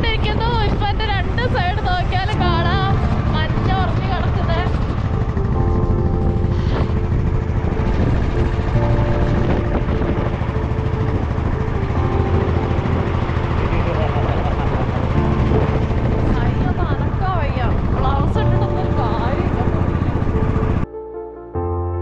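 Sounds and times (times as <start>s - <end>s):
wind on microphone: 0.0s - 20.8s
motorcycle engine running: 0.0s - 20.9s
road rumble: 0.0s - 20.9s.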